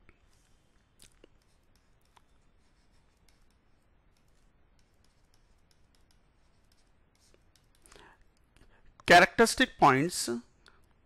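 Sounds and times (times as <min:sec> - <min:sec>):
stylus ticking on pen tablet: 0:01.2 - 0:08.5.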